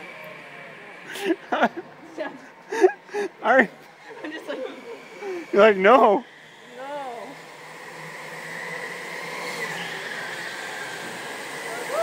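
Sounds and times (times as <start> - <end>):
go-karts high whine: 0.0 - 12.0.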